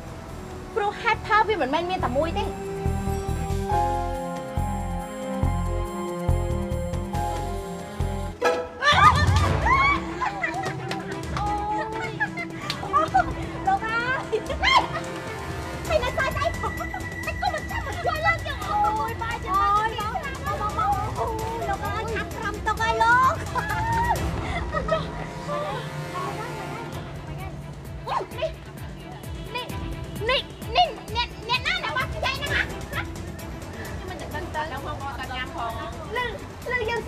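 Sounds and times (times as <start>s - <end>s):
background music with held notes: 0.0s - 37.0s
voices talking: 25.0s - 37.0s.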